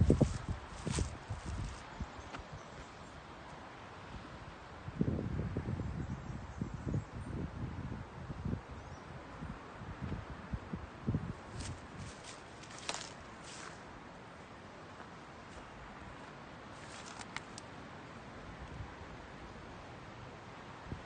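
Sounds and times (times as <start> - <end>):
wind buffeting microphone: 0.0 - 2.6, 4.8 - 13.7.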